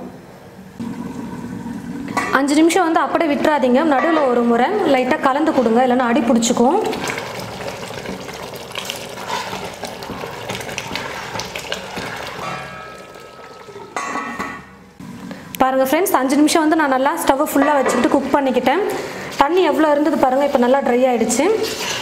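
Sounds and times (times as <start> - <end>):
liquid bubbling and sloshing: 0.8 - 2.4, 6.4 - 15.5
ladle clinking on steel pot: 12.0 - 14.7, 17.6 - 18.2.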